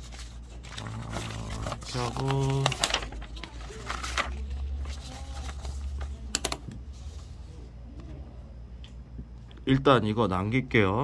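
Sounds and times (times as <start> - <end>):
paper being handled: 0.0 - 7.6
steady low hum: 0.0 - 11.0.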